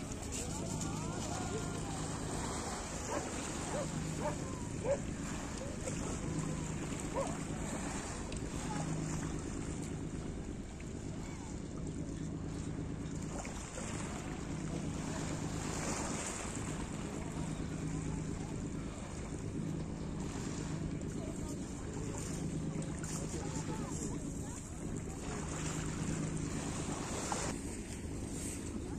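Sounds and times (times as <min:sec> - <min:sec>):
steady low hum: 0:00.0 - 0:28.9.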